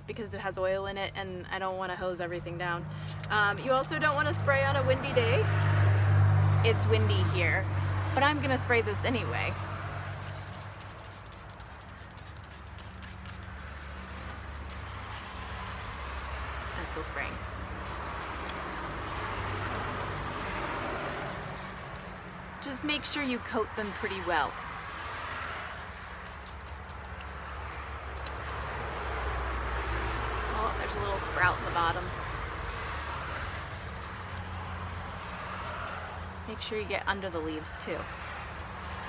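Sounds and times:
spray bottle squirting: 3.0s - 4.8s, 10.0s - 13.6s, 14.2s - 17.1s, 17.9s - 22.2s, 25.0s - 27.3s, 28.1s - 36.2s, 38.4s - 39.0s.

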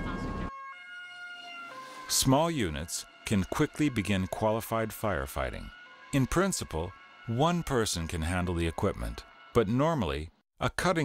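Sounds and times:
two-tone siren: 0.0s - 10.4s.

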